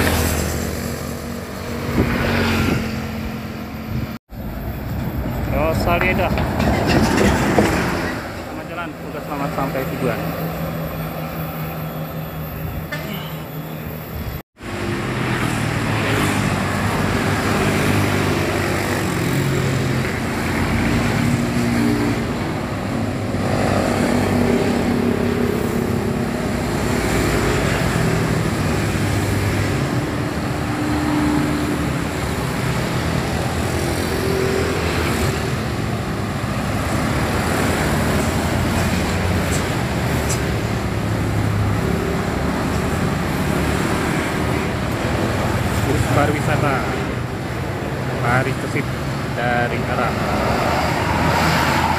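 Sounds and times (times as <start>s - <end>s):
busy road traffic: 0.0s - 51.9s.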